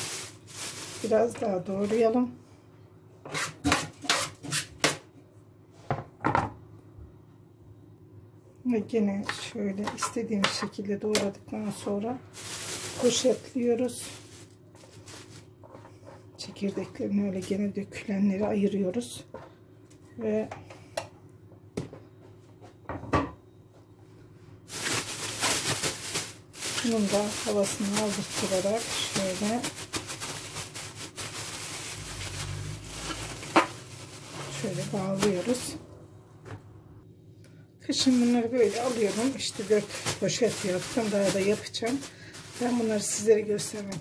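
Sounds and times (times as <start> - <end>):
plastic bag crinkling: 0.0 - 2.2, 12.3 - 15.6, 24.7 - 35.8, 38.0 - 44.0.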